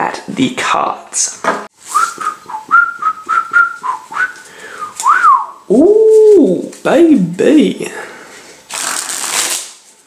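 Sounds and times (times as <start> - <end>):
playing cards riffled: 8.7 - 9.9.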